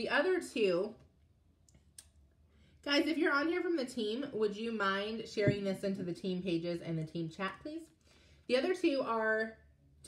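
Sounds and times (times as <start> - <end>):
woman speaking: 0.0 - 1.0, 2.9 - 7.9, 8.5 - 9.6.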